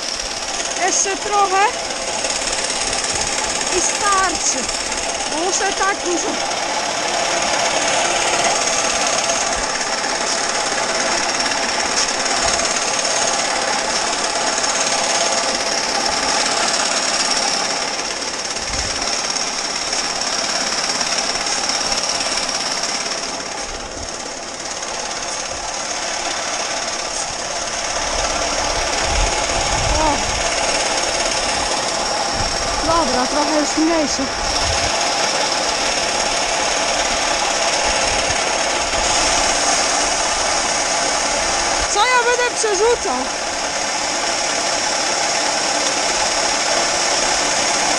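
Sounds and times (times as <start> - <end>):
grain pouring into trailer: 0.0 - 42.7, 43.3 - 47.9
conveyor mechanical rattle: 0.0 - 47.9.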